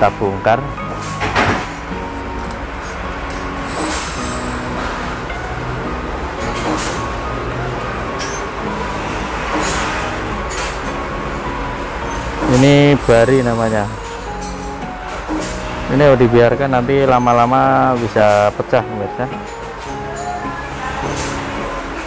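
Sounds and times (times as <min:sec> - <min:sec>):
faint background music: 0:00.0 - 0:22.0.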